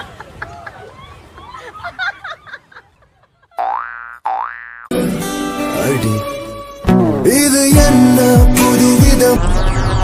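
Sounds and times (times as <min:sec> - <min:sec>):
music: 0:04.9 - 0:10.0.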